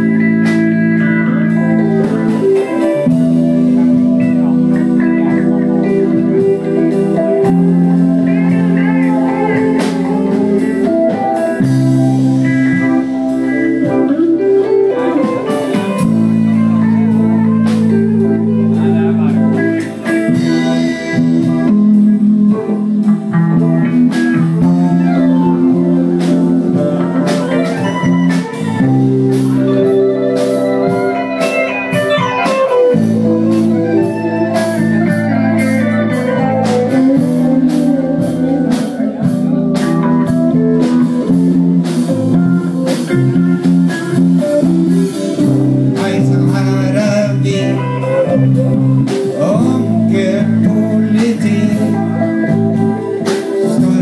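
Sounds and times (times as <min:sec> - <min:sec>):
live band playing: 0:00.0 - 0:54.0.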